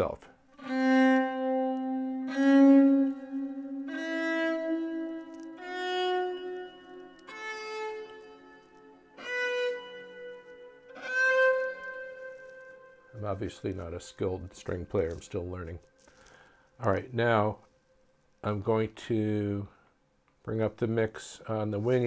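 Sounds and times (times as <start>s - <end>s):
bowed string notes: 0.0s - 17.7s
low sustained bowed note: 0.6s - 17.6s.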